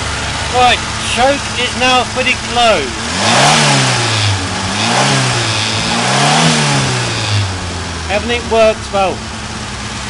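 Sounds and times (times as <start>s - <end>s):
car engine revving: 0.0s - 10.0s.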